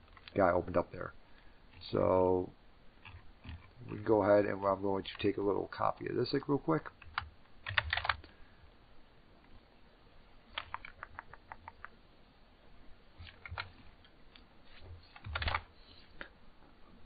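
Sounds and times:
keyboard and mouse clicks: 7.0 - 8.3, 10.5 - 12.0, 13.2 - 14.4, 15.1 - 15.7.

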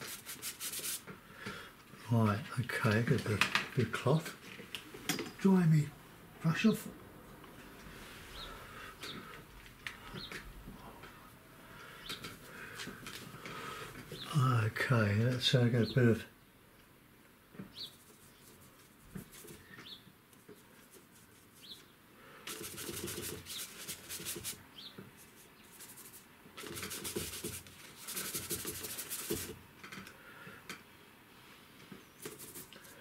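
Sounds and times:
paintbrush scrubbing on paper: 0.0 - 1.1, 17.8 - 19.6, 20.5 - 21.9, 22.5 - 24.6, 25.2 - 29.6, 32.2 - 33.0.

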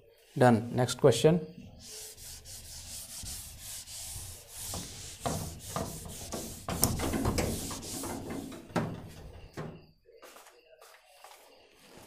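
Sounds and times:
eraser wiping whiteboard: 1.8 - 8.9.

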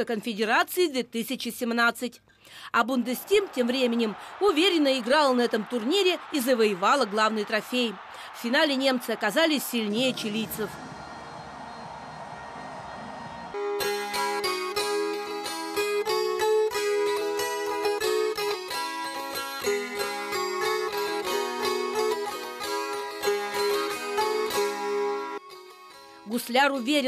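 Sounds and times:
crowd noise: 2.8 - 14.8.

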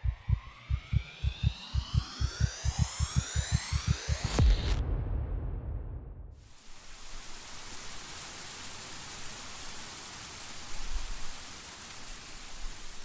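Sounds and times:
white noise hiss: 6.4 - 13.0.

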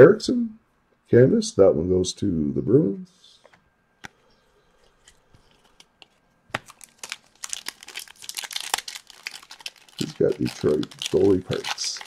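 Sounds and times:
plastic wrapper crinkling: 4.8 - 12.0.

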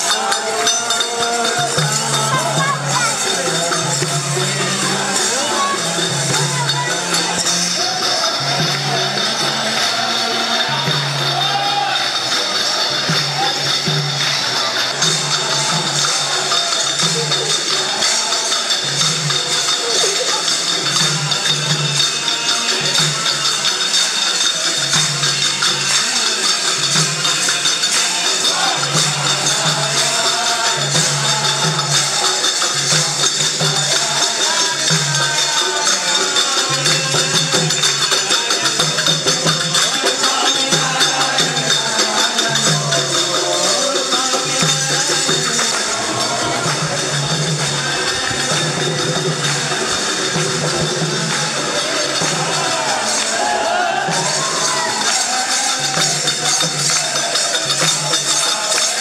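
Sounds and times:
group of voices singing: 0.0 - 59.0
hand cymbals jingling: 0.0 - 59.0
hand drum beating: 1.3 - 9.2.

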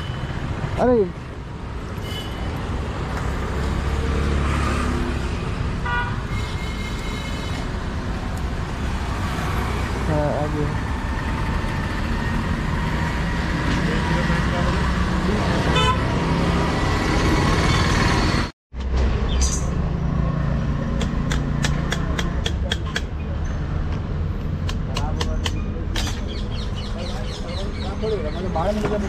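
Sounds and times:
street traffic noise: 0.0 - 29.0
vehicle horn toot: 15.7 - 16.1.

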